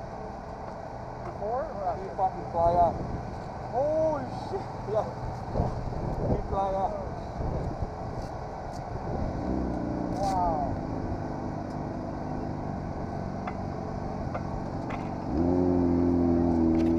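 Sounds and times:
louder engine close by: 0:09.0 - 0:16.9.

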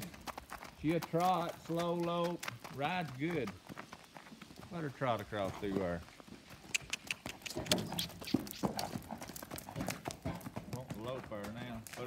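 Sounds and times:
horse hooves trotting on gravel: 0:00.0 - 0:12.0.

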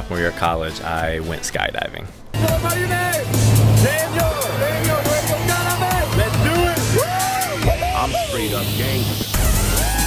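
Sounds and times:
man's raised voice: 0:01.6 - 0:09.1
small plane engine drone: 0:02.3 - 0:09.9.

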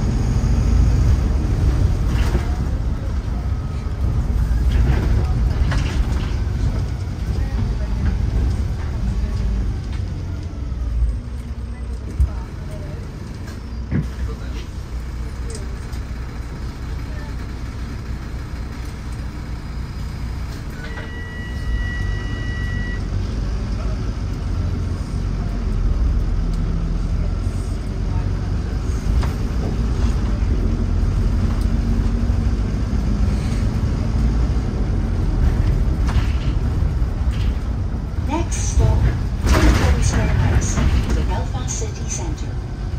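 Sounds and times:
bus engine and road rumble: 0:00.0 - 0:42.9.

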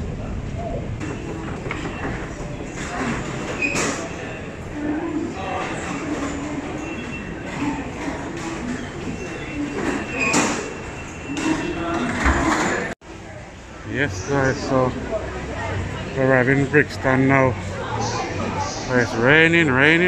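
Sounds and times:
crowd murmuring: 0:00.0 - 0:20.0.

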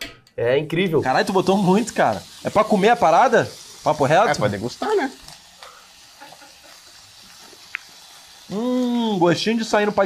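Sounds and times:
food sizzling in a pan: 0:01.0 - 0:10.0.

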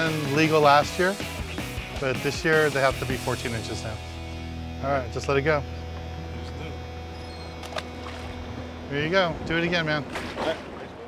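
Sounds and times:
boat engine idling: 0:03.4 - 0:11.0.

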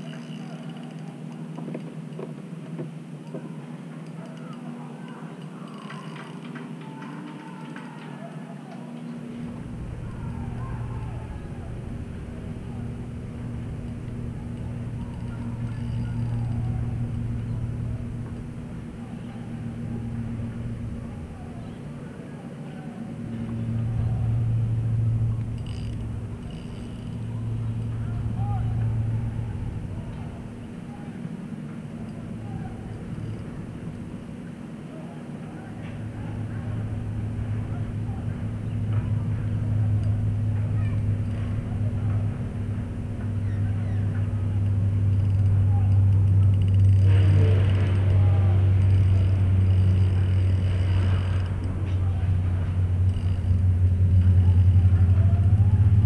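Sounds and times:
boat motor humming: 0:00.0 - 0:56.0.

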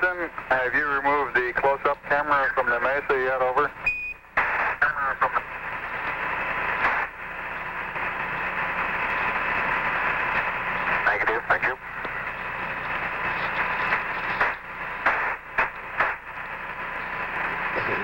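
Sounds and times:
radio transmission voice: 0:00.0 - 0:03.8, 0:04.5 - 0:06.2, 0:10.8 - 0:15.0, 0:17.0 - 0:18.0
radio static hiss: 0:00.0 - 0:18.0.

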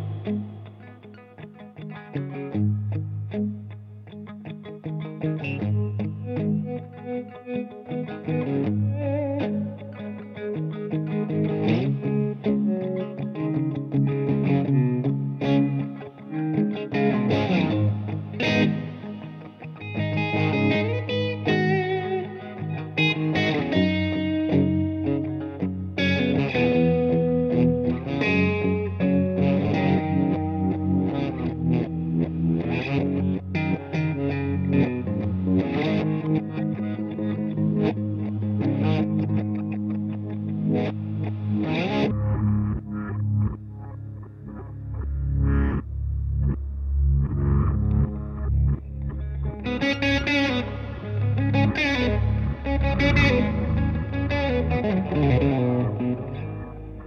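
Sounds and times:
distorted electric guitar blues: 0:00.0 - 0:57.0
looped backing track: 0:14.4 - 0:57.0
slowed-down reversed loop: 0:40.4 - 0:57.0.

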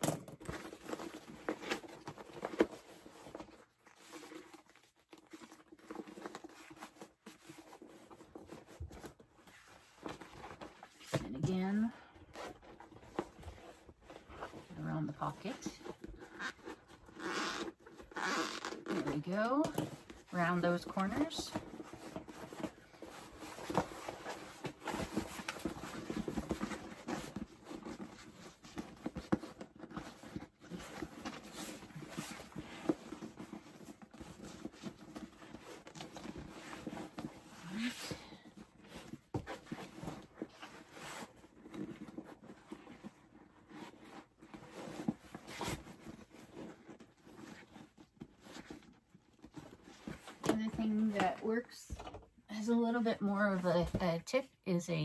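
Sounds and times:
handbag rustling and crinkling: 0:00.0 - 0:54.0
woman speaking: 0:11.2 - 0:12.0, 0:14.7 - 0:15.9, 0:19.0 - 0:21.6, 0:50.5 - 0:55.0.

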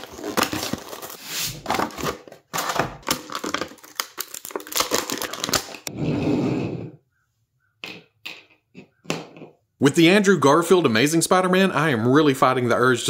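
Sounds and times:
plastic rustling: 0:00.0 - 0:05.9
plastic tray crackling and snapping: 0:01.7 - 0:05.9.

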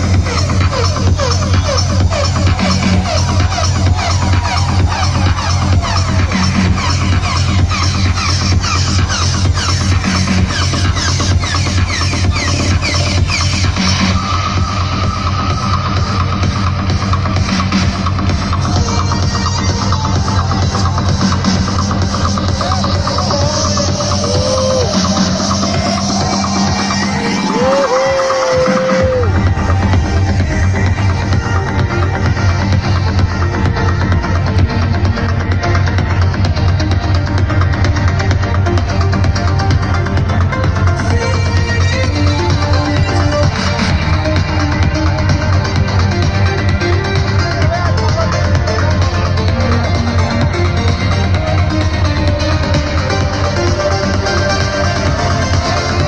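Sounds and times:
electronic dance music: 0:00.0 - 0:56.0
heavy kick beat: 0:00.0 - 0:56.0.

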